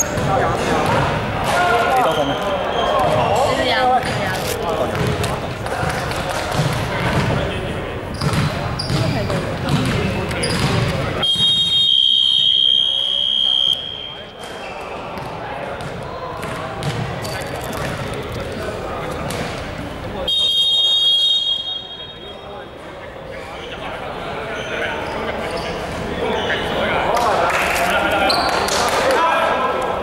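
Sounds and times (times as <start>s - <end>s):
voices chattering: 0.0s - 30.0s
basketball bouncing: 0.1s - 1.1s, 3.0s - 7.5s, 8.1s - 11.1s, 15.2s - 18.1s.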